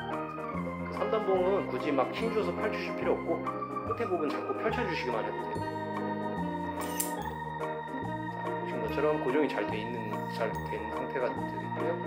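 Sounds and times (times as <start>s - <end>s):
organ music with bass line: 0.0s - 12.0s
steel baton snapping open: 6.8s - 7.2s.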